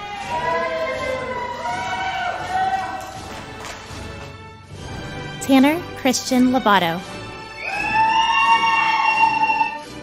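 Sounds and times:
person cheering high-pitched: 7.6s - 9.9s.

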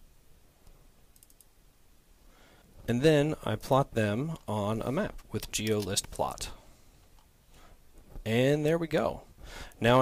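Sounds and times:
quick computer clicks: 1.1s - 1.5s
man's voice: 2.9s - 6.6s, 9.8s - 10.0s.

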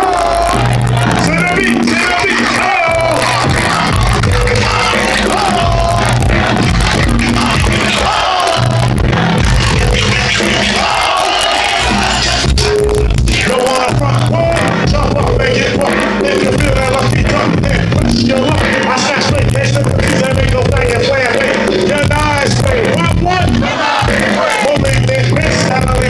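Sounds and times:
crowd noise and voices: 0.0s - 26.0s
hip-hop beat with heavy bass: 0.0s - 26.0s.

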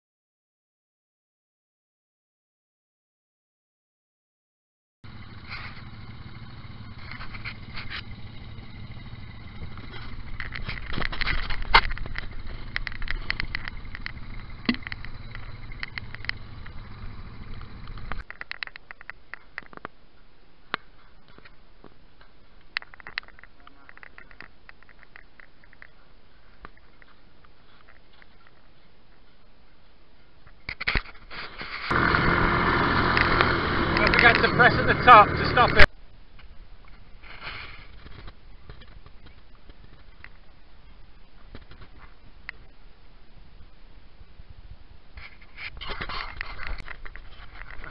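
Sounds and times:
quad bike engines running: 5.0s - 19.0s, 31.6s - 35.9s
knocks and clicks: 9.6s - 19.8s.

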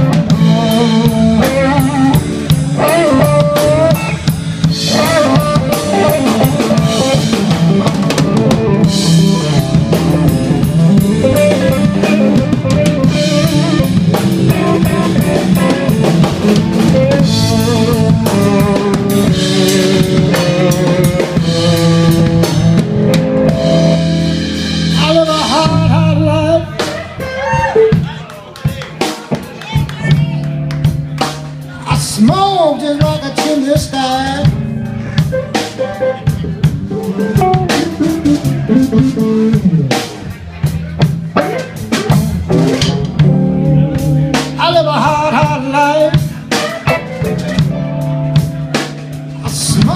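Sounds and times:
bass guitar: 0.0s - 49.9s
drum kit: 0.0s - 49.9s
electric lead guitar: 0.0s - 49.9s.

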